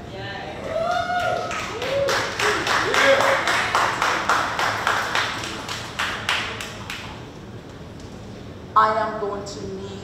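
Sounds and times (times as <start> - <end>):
audience clapping in rhythm: 1.2 - 7.2.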